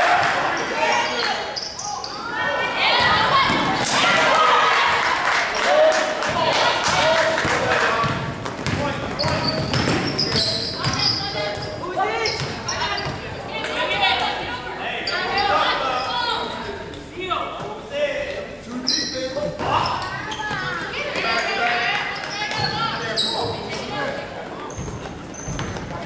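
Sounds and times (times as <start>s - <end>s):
sneakers squeaking: 0.2s - 3.8s, 8.0s - 14.3s, 15.0s - 17.7s, 18.7s - 26.0s.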